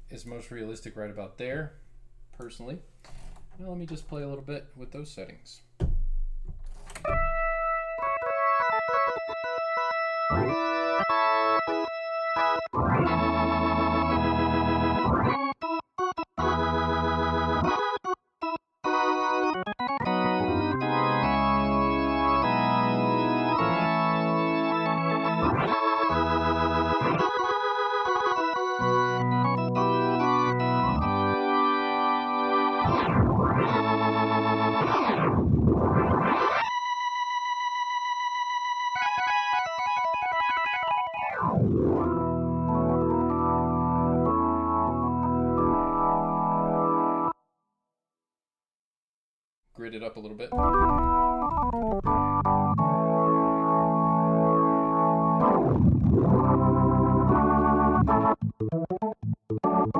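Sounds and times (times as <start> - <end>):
organ through rotary speaker: 6.7 - 47.4, 50.5 - 59.9.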